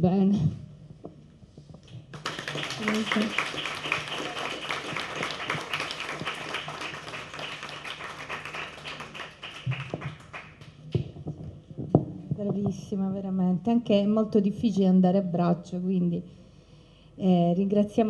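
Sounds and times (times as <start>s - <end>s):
audience applauding: 2.1s - 10.8s.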